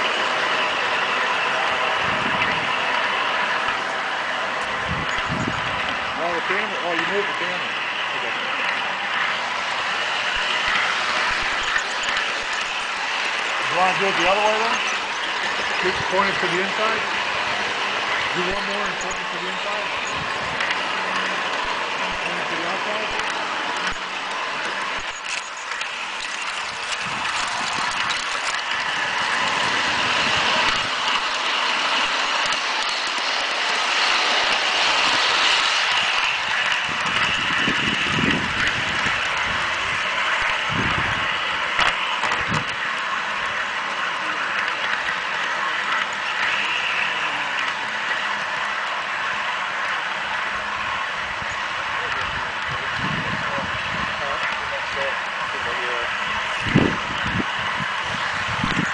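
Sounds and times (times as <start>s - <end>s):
model train wheels rattling: 0.0s - 58.9s.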